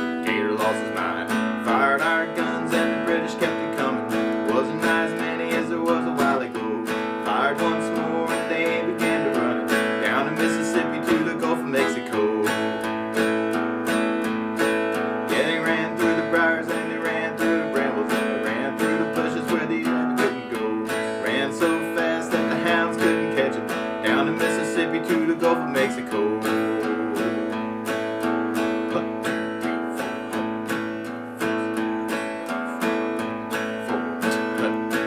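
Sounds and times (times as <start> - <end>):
acoustic guitar strumming: 0.0 - 35.0.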